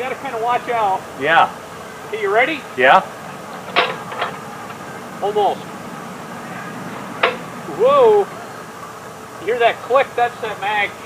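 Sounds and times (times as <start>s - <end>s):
propeller swung by hand: 3.2s - 9.2s.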